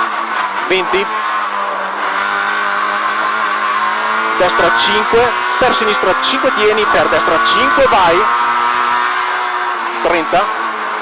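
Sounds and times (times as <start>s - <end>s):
car engine running at high revs: 0.0s - 11.0s.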